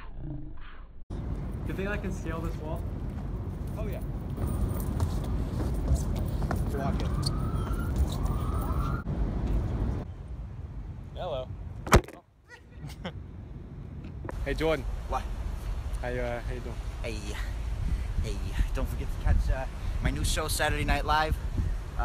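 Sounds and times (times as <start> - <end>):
sharp knock: 11.9 - 12.2
wind buffeting microphone: 16.6 - 22.0.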